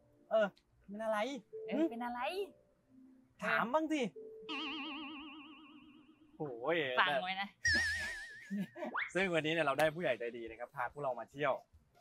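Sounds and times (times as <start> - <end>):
wobbling cartoon tone: 4.5 - 6.4, 7.6 - 9.1.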